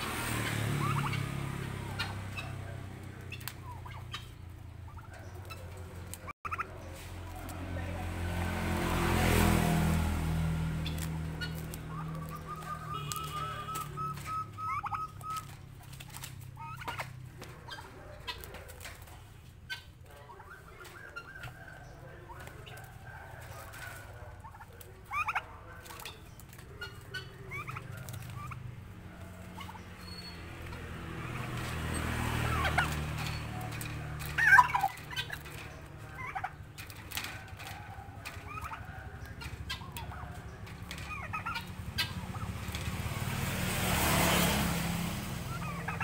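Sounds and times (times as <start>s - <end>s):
turkey chattering trill: 0.0s - 7.5s, 10.7s - 43.0s, 45.2s - 46.0s
turkeys calling: 0.0s - 46.0s.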